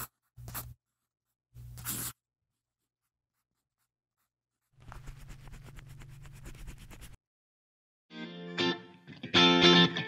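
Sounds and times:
marker scratching on paper: 0.0s - 7.2s
music: 8.1s - 10.0s.

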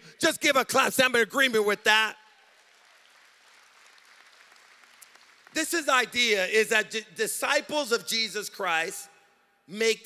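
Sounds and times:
man speaking: 0.0s - 2.2s, 5.6s - 10.0s.

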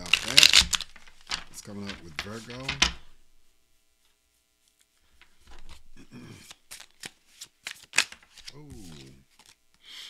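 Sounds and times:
cards being shuffled: 0.0s - 3.1s, 4.0s - 9.6s.

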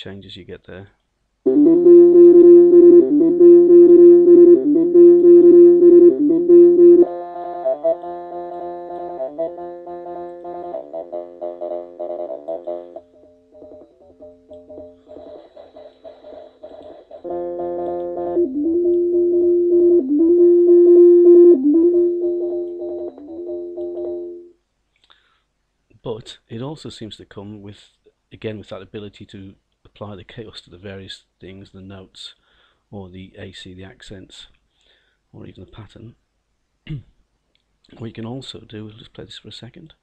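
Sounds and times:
synthesizer bass pattern: 1.5s - 13.0s, 13.6s - 24.5s.

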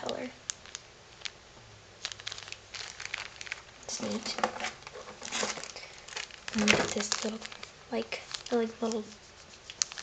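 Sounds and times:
plastic bags crinkling: 0.0s - 1.4s, 2.0s - 10.0s.

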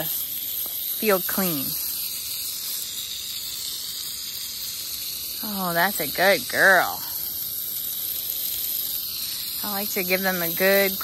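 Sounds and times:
hose spraying water: 0.0s - 11.0s.

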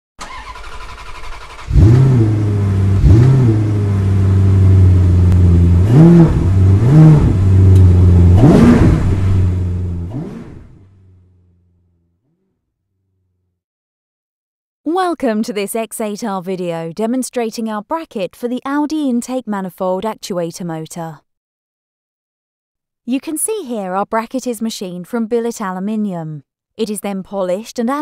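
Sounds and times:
car engine starting and revving: 0.2s - 12.5s.

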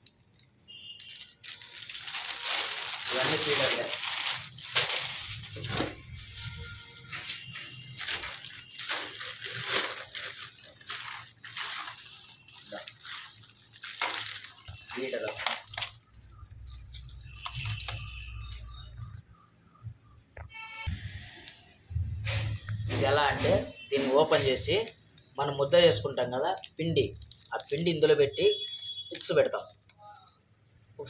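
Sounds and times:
plastic bags rustling: 0.7s - 18.8s, 26.2s - 30.2s
faint music: 1.4s - 28.4s.

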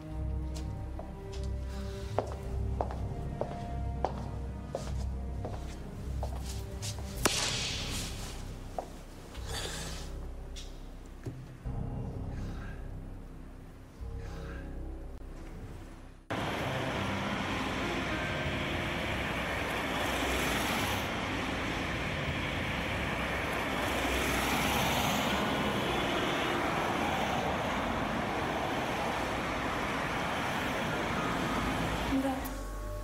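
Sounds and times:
cars passing on busy road: 16.3s - 32.6s.

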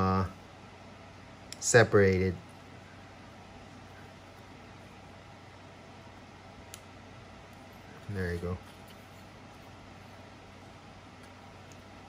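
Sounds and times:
faint steady hum and hiss: 0.0s - 12.0s.

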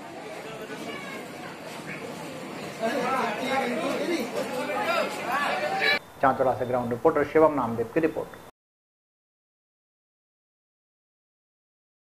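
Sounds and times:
people talking at once: 0.0s - 6.0s.

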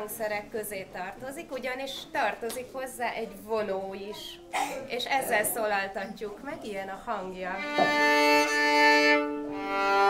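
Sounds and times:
violin sustained notes: 7.6s - 10.0s.

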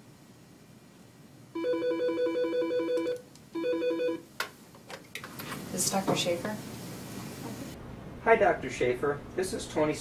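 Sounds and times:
desk telephone warbling ring: 1.6s - 4.2s.

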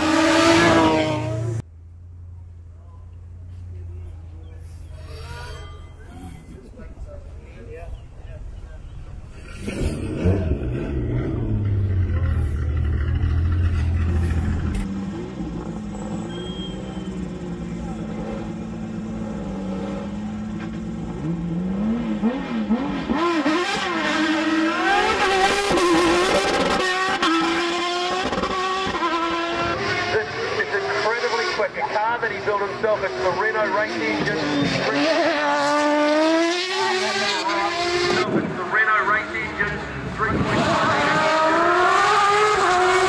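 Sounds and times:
race engine idling and revving: 0.0s - 4.9s, 8.9s - 43.0s.

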